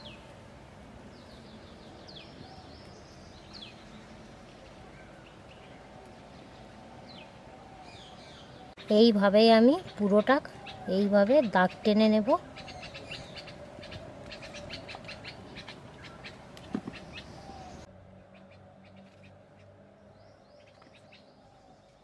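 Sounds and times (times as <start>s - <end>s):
birds chirping: 1.0s - 22.0s.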